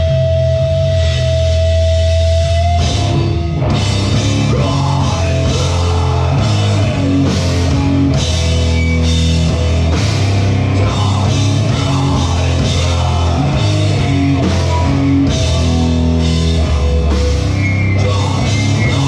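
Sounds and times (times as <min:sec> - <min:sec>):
electric guitar chords: 0:00.0 - 0:19.0
punk band playing live: 0:00.0 - 0:19.0
steady drumming: 0:01.4 - 0:19.0.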